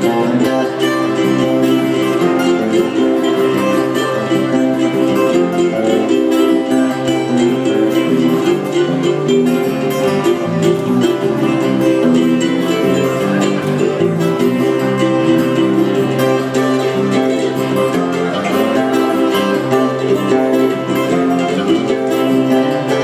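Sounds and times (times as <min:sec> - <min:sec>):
guitars plucked and strummed: 0:00.0 - 0:23.0
upright bass line: 0:00.0 - 0:23.0.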